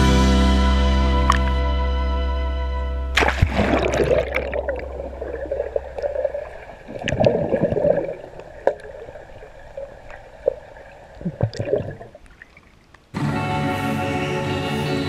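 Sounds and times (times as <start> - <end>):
camera splashing into pool: 3.2 - 9.2
underwater gurgling and bubbling: 3.2 - 12.8.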